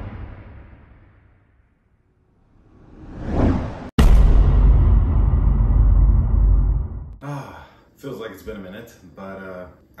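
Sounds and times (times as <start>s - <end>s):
low rumbling whoosh: 2.4s - 7.2s.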